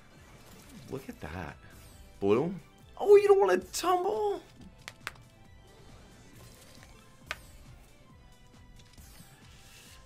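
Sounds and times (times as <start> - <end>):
faint slot machine music: 0.0 - 10.0.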